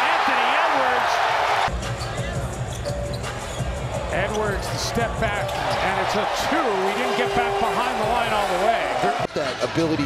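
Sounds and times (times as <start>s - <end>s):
arena music: 1.7s - 9.3s.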